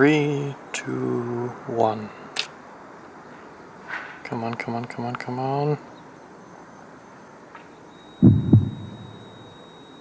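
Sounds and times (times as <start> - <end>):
faint high steady tone: 2.9 - 10.0
heartbeat-like low thumps: 8.2 - 9.2.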